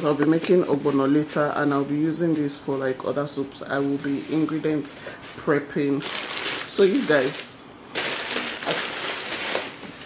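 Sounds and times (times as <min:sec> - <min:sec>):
plastic packaging crinkling: 0:04.2 - 0:10.0.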